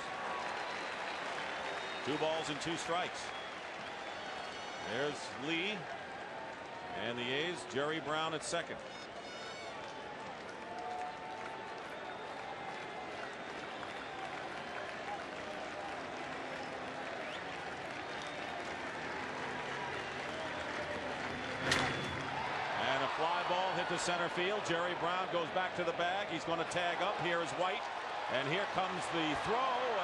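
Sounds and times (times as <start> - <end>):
crowd applause: 0.0 - 30.0.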